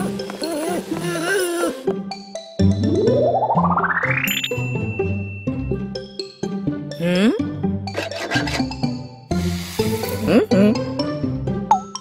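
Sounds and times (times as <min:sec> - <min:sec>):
background music: 0:00.0 - 0:12.0
hand saw rasping: 0:08.0 - 0:08.7.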